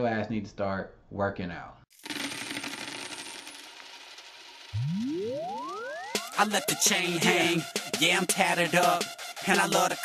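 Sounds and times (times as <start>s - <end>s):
coins pouring and jingling: 2.0s - 4.7s.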